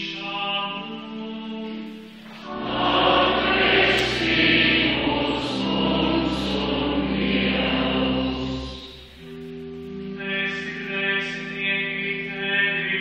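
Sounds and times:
church choir singing: 0.0 - 13.0.

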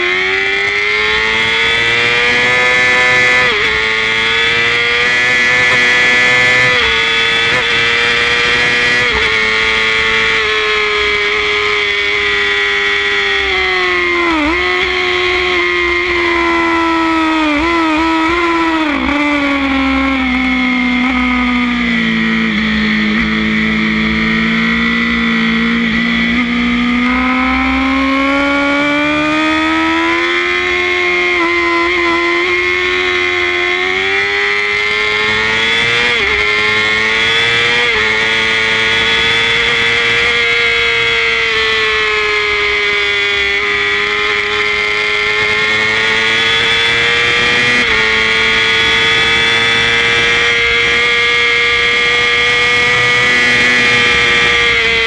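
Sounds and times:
racing motorcycle engine revving: 0.0 - 55.0.

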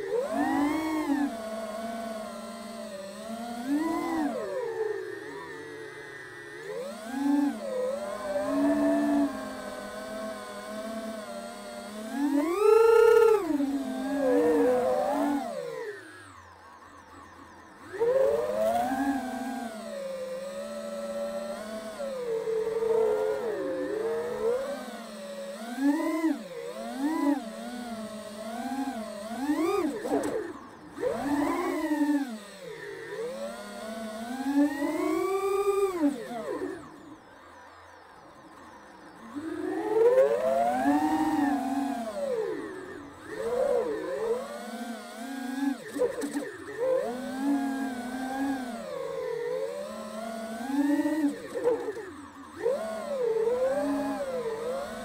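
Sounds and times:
model plane motor and propeller: 0.0 - 55.0.

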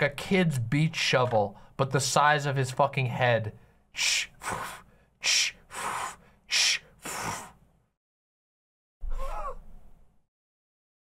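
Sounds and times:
woman wheezing laughter: 9.1 - 9.6.

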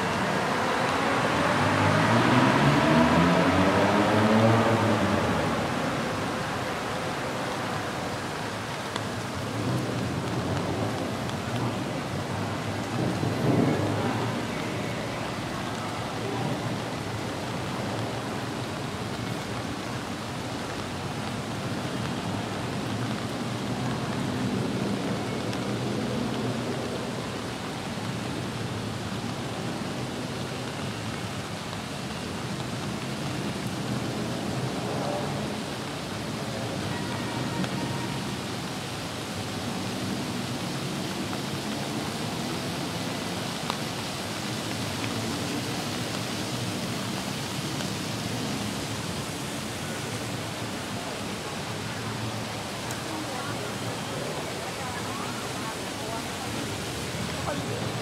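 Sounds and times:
faint traffic: 0.0 - 58.0
steady rain hiss: 0.0 - 58.0.

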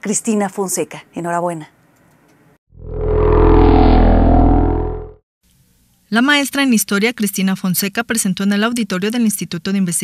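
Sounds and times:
low synthesized whoosh: 2.8 - 5.2.

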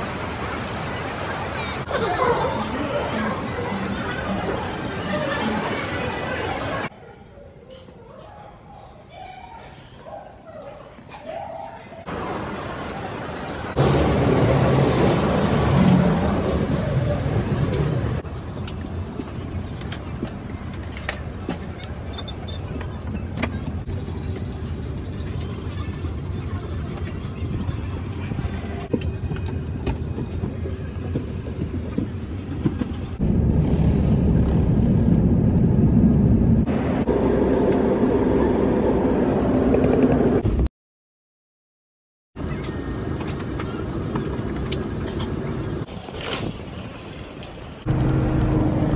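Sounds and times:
busy airport terminal noise: 0.0 - 33.2.

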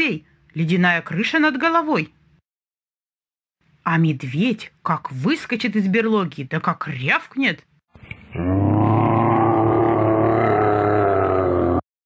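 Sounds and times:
bear roaring: 8.3 - 11.8.

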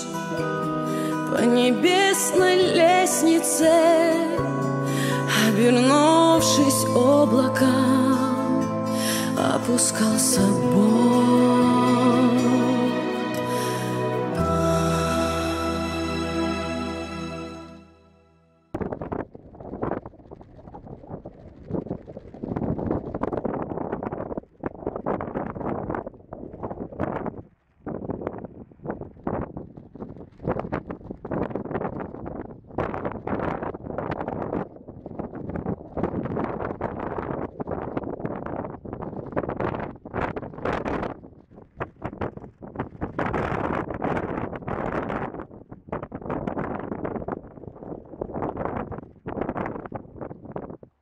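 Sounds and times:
wind buffeting microphone: 18.8 - 51.0.

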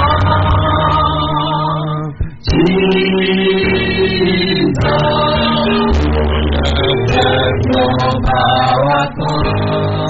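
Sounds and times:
group gospel singing: 0.0 - 10.0.

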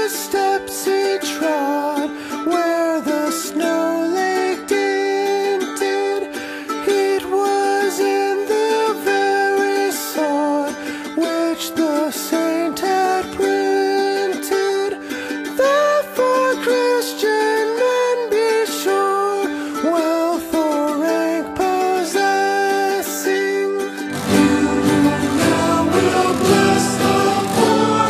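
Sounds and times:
acoustic guitar music: 0.0 - 28.0.

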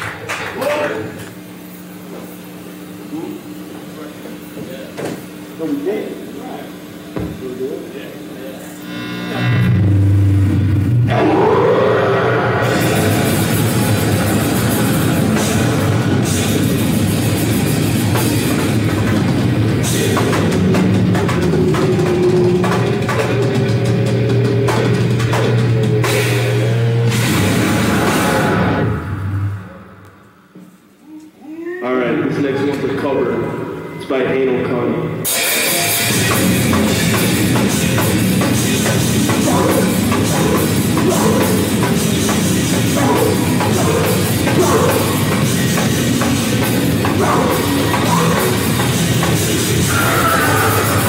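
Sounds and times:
amplifier hum: 0.0 - 31.0
heavy metal band playing: 9.4 - 29.6, 35.2 - 51.0
pounding drum kit: 9.8 - 29.9, 35.3 - 51.0
faint voice: 31.0 - 32.0.

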